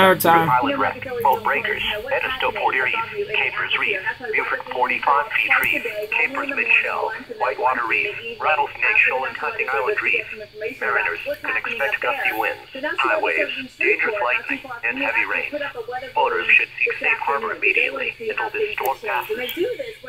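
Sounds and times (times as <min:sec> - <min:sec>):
voice over radio speaker: 0:00.0 - 0:20.0.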